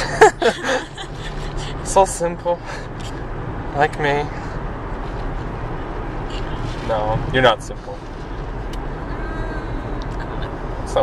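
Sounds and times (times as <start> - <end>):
car road and engine rumble: 0.0 - 11.0.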